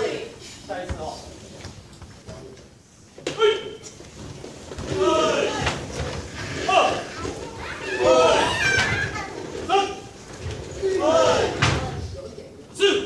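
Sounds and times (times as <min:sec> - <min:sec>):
high-pitched voices calling out: 0:06.4 - 0:10.2.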